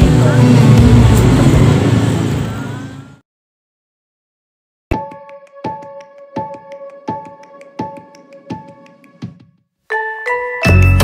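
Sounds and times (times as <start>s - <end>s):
vehicle engine running: 0.0s - 3.2s.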